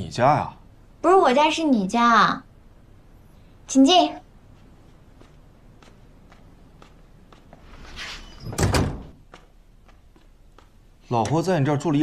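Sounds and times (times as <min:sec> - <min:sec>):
wooden door swinging shut: 0:08.4 - 0:09.2.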